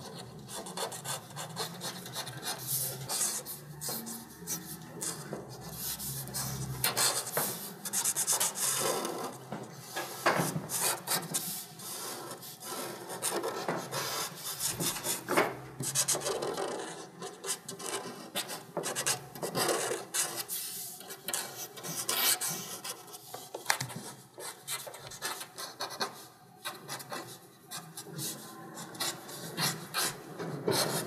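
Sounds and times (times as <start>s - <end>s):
pencil sketching on paper: 0.0s - 31.0s.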